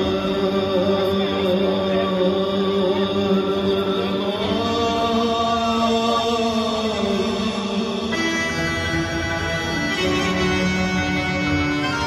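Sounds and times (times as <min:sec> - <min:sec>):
man singing long notes: 0:00.0 - 0:12.0
live band playing: 0:08.0 - 0:12.0.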